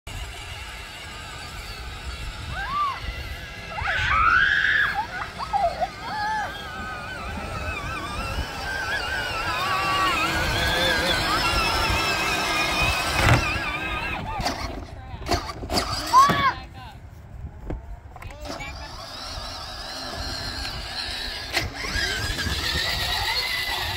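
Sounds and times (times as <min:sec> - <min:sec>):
toy vehicle motors whining: 0:00.1 - 0:16.6, 0:18.2 - 0:23.9
plastic wheels rumbling on grass: 0:00.1 - 0:16.8, 0:17.5 - 0:23.9.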